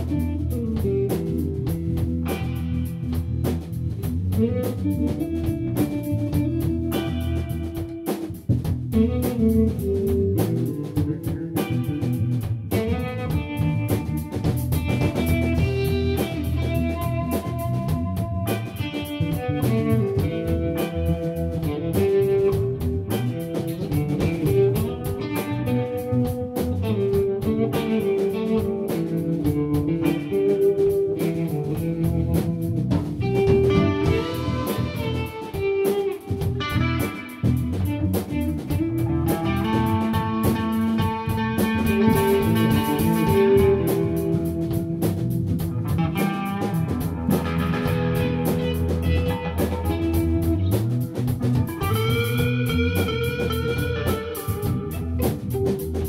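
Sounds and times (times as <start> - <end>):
bass guitar: 0.0 - 56.0
drum kit: 0.0 - 56.0
electric guitars playing: 0.0 - 56.0.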